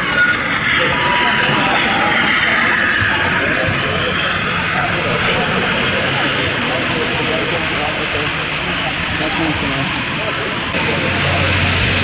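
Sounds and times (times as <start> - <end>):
model train running on track: 0.0 - 12.0
murmur of voices: 0.0 - 12.0.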